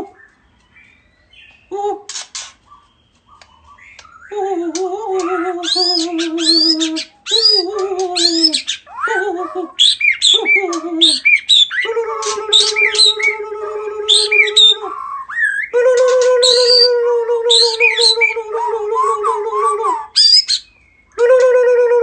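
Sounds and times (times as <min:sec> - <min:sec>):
bird singing whistled notes: 0:00.1 - 0:01.8, 0:02.4 - 0:04.4, 0:05.2 - 0:09.2, 0:09.8 - 0:11.9, 0:14.1 - 0:18.4, 0:19.0 - 0:21.2.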